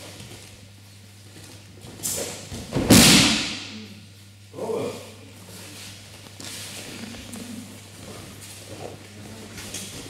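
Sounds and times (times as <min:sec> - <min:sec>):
steady low hum: 0:00.0 - 0:10.0
rustling movement on mats: 0:05.4 - 0:10.0.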